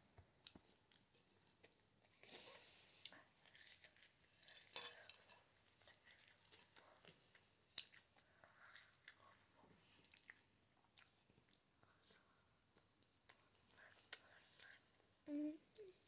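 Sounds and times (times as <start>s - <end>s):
quiet chewing: 0.2s - 15.1s.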